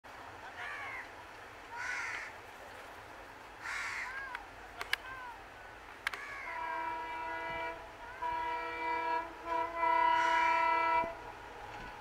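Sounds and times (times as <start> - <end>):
crow cawing: 1.8 - 2.3, 3.6 - 4.3, 6.2 - 6.6.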